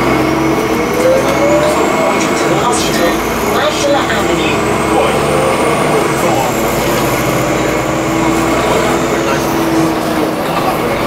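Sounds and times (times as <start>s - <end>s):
whine rising in pitch: 0.0s - 10.2s
bus engine and drivetrain: 0.0s - 11.0s.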